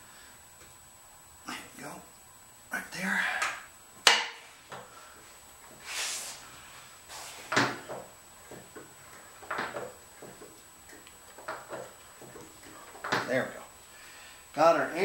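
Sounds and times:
short hiss: 0:05.8 - 0:07.5
tools clunking and scraping: 0:07.3 - 0:10.6.

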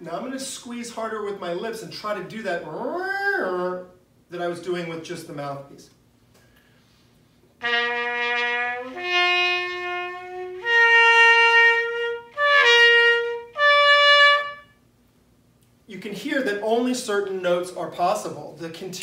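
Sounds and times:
muted cornet held notes: 0:07.6 - 0:14.8.

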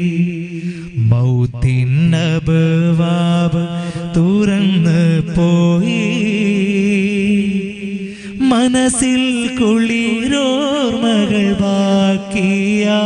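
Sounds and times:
man singing into microphone: 0:00.0 - 0:13.0.

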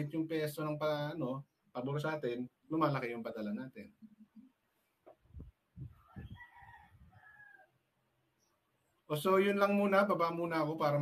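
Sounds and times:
faint rooster crow: 0:05.8 - 0:08.1.

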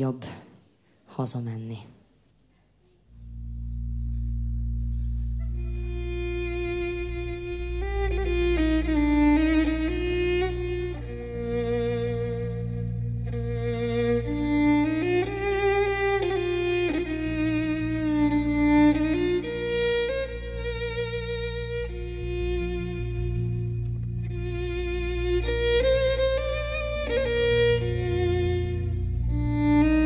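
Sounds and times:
low steady drone: 0:02.9 - 0:30.0
violin slow melody: 0:03.0 - 0:30.0.

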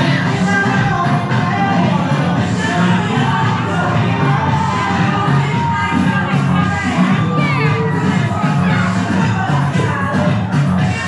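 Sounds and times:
children shouting: 0:00.0 - 0:10.3
crowd chatter: 0:00.0 - 0:11.0
music with bass line: 0:00.0 - 0:11.0.

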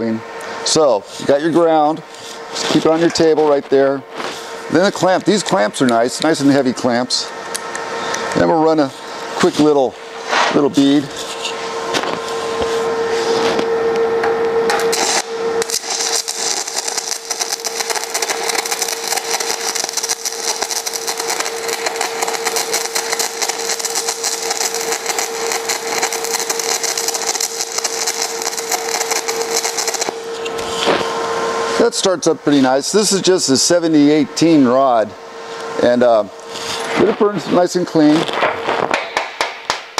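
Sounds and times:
welding arc crackling: 0:00.0 - 0:12.8, 0:14.7 - 0:31.1, 0:35.8 - 0:39.9.

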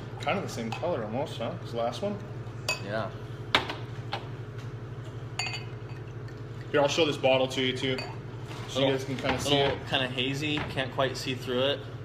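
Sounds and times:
steady low hum: 0:00.0 - 0:12.0
glassware clinking: 0:02.6 - 0:03.0, 0:05.4 - 0:06.2, 0:07.8 - 0:08.2.

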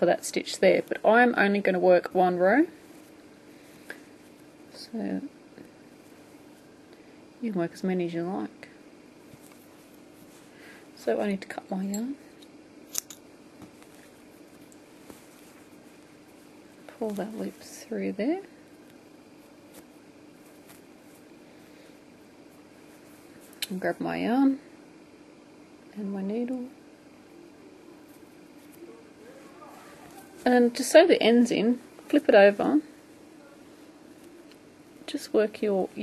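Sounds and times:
faint low voice murmur: 0:28.8 - 0:30.5.

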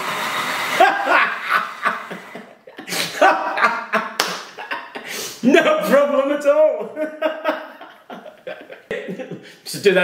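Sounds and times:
man laughing: 0:00.7 - 0:05.9, 0:06.6 - 0:09.6.

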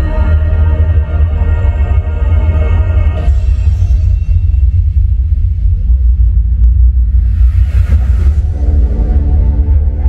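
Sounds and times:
deep bass rumble: 0:00.0 - 0:10.0
whoosh: 0:06.8 - 0:10.0.

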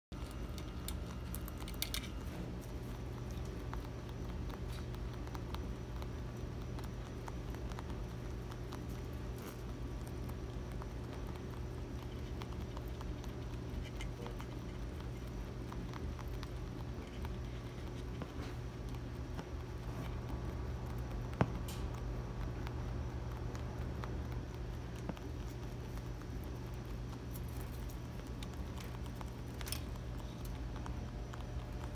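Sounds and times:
rabbits chewing: 0:00.1 - 0:31.9
steady low hum: 0:00.1 - 0:31.9.

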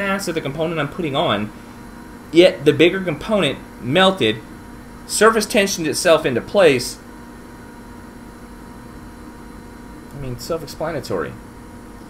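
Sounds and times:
equipment hum and hiss: 0:00.0 - 0:12.0.

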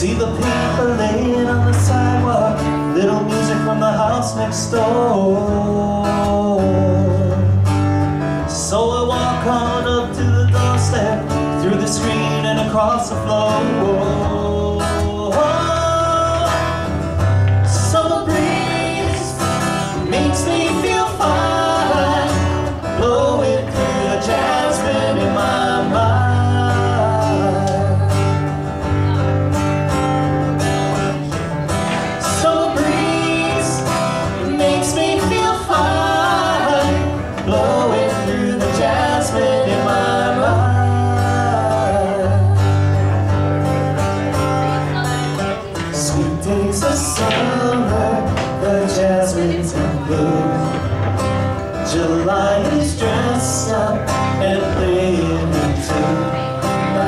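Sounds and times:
people singing: 0:00.0 - 0:29.4, 0:30.6 - 0:57.0
acoustic guitar: 0:00.0 - 0:57.0.

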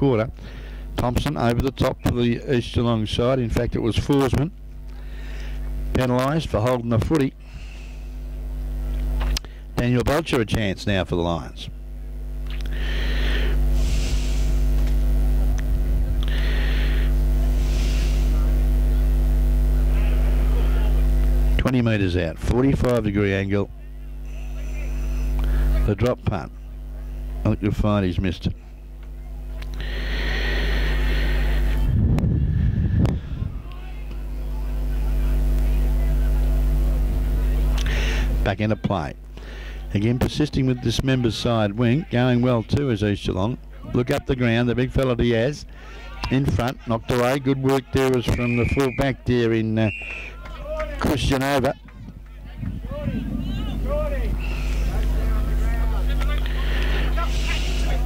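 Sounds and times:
steady low hum: 0:00.0 - 0:58.0
steady low rumble: 0:29.6 - 0:33.8, 0:50.9 - 0:58.0
people calling out: 0:45.7 - 0:58.0.

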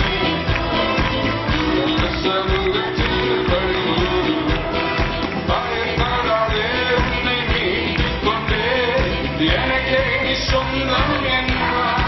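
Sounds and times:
men singing into microphones: 0:00.0 - 0:12.0
worship song accompaniment: 0:00.0 - 0:12.0.

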